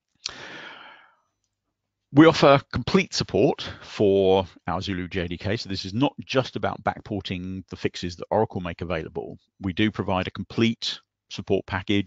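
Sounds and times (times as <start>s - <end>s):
mouth click: 0.2s - 0.4s
man breathing in through mouth: 0.2s - 1.2s.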